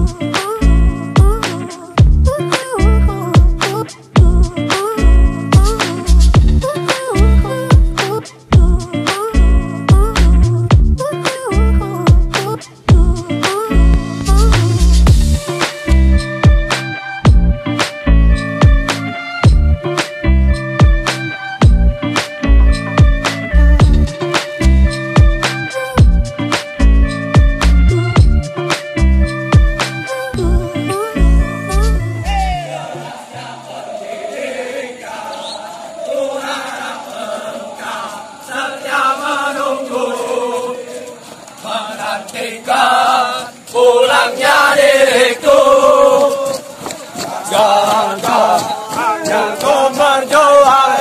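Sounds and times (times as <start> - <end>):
background music with drum beat: 0.0 - 30.2
group chanting in unison: 32.3 - 51.0.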